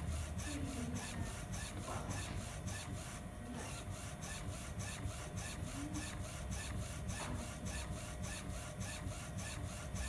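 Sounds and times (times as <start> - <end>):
printer carriage hissing ticks: 0.0 - 10.0.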